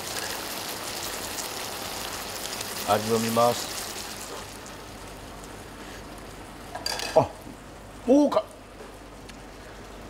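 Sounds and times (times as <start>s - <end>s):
simmering pot hiss: 0.0s - 10.0s.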